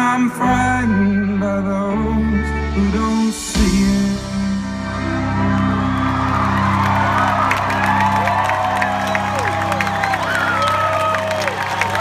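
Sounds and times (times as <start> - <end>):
crowd whooping and cheering: 4.9 - 12.0.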